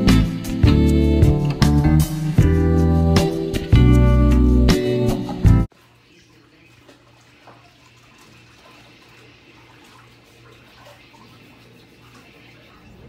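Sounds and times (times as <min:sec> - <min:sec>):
faint running water: 0:05.6 - 0:13.0.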